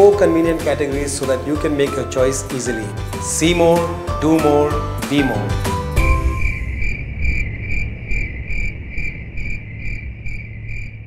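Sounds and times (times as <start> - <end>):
insect chirping: 6.0 - 11.0.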